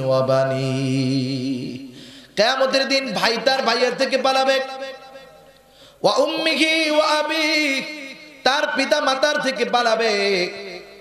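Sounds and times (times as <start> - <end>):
man chanting a sermon: 0.0 - 11.0.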